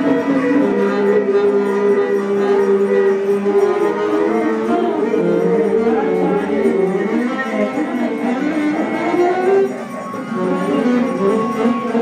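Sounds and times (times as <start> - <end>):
live ensemble music: 0.0 - 12.0
plucked strings: 0.0 - 12.0.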